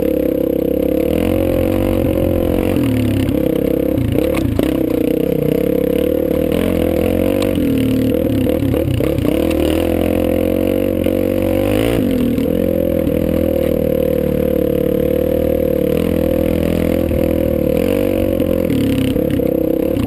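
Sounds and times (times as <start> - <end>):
dirt bike engine running hard: 0.0 - 20.0.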